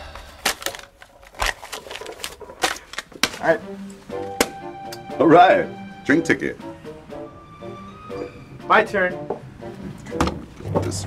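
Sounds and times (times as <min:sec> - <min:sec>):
paper being crumpled: 0:00.4 - 0:03.5.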